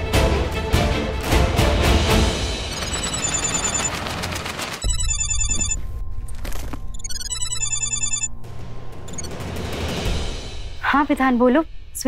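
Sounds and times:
background music: 0:00.0 - 0:12.0
mobile phone ringtone: 0:02.7 - 0:04.1, 0:04.8 - 0:05.8, 0:06.9 - 0:08.4.

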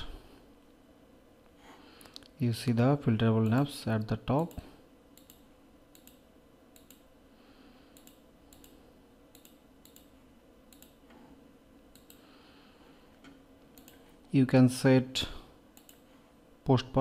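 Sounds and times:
computer mouse clicks: 0:04.4 - 0:07.1, 0:07.9 - 0:11.2, 0:11.9 - 0:12.3, 0:13.2 - 0:14.0, 0:15.7 - 0:16.0.

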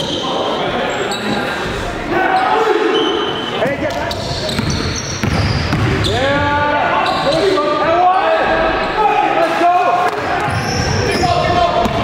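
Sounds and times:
players shouting: 0:02.0 - 0:03.5, 0:05.9 - 0:12.0.

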